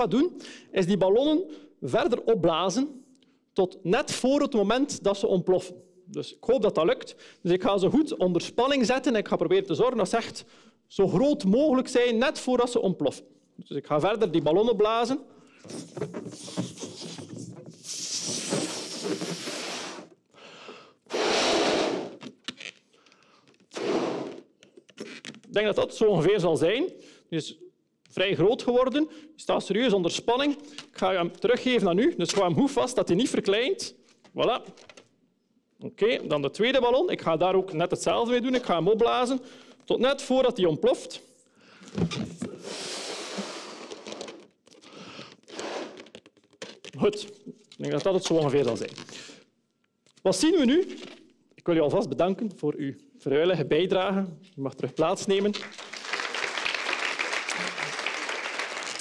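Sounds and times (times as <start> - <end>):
man blowing into a balloon: 15.6 - 20.3, 21.0 - 22.3, 23.7 - 24.6, 42.4 - 44.4, 45.2 - 46.2.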